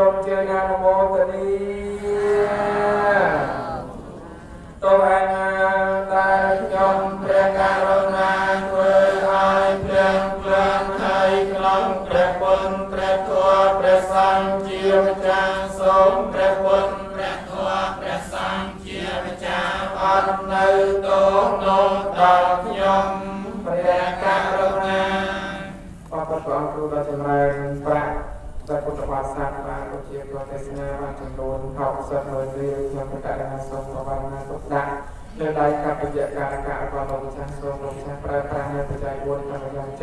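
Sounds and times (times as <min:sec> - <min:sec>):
person chanting on one pitch: 0:00.0 - 0:40.0.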